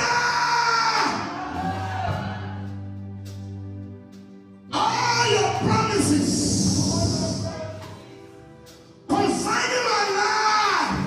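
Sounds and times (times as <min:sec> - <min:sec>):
congregation crying out: 0:00.0 - 0:02.8
church music: 0:00.0 - 0:11.0.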